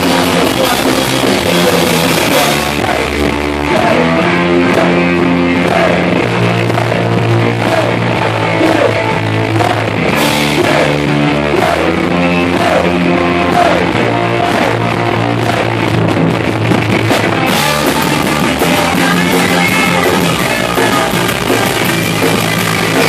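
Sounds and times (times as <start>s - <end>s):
punk rock band playing live: 0.0s - 23.0s.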